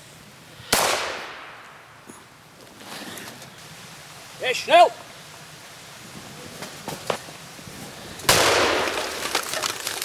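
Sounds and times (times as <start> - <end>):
rifle shot echoing: 0.7 - 1.8, 8.3 - 8.9
scattered cracks and snaps: 8.2 - 10.0.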